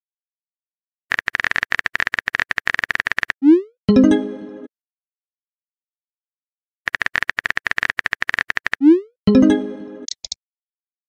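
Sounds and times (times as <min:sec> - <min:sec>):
phone keyboard typing clicks: 0:01.1 - 0:03.4, 0:06.9 - 0:08.8, 0:10.1 - 0:10.4.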